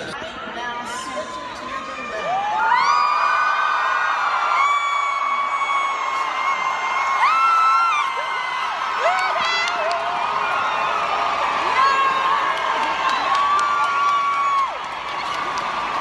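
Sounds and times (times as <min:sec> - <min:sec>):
crowd noise: 0:00.0 - 0:16.0
young women screaming and whooping: 0:02.2 - 0:14.9.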